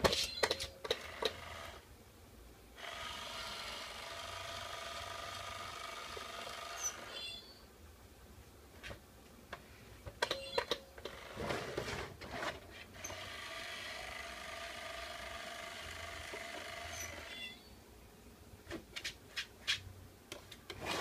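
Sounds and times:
small motor whirring: 2.8s - 7.5s, 13.0s - 17.6s.

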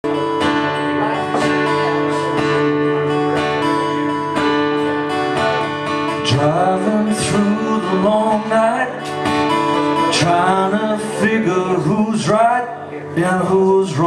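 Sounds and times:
acoustic guitar strumming: 0.0s - 14.0s
man singing: 5.2s - 14.0s.

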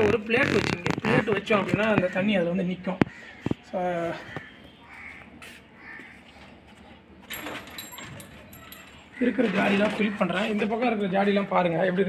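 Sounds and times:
faint bird calls: 3.0s - 6.6s
light metallic clink: 7.3s - 9.0s.

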